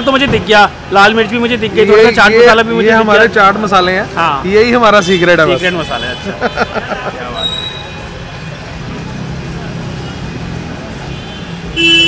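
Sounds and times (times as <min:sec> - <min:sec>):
vehicle engine rumbling: 0:00.0 - 0:11.9
car horn: 0:05.0 - 0:06.8, 0:11.0 - 0:12.0.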